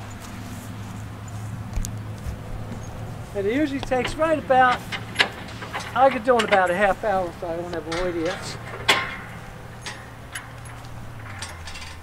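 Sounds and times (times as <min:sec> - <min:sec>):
metal ramps clicking and clinking: 0:02.8 - 0:12.0.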